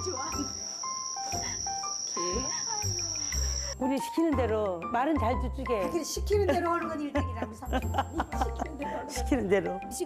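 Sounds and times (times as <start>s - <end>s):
crickets chirping: 0.0s - 3.8s
light background music: 0.0s - 10.0s.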